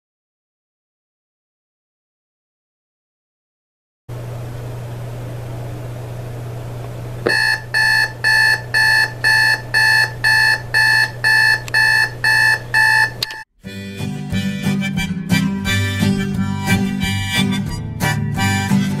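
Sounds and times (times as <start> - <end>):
low steady hum: 4.1 - 13.4
alarm clock electronic beeps: 7.3 - 13.5.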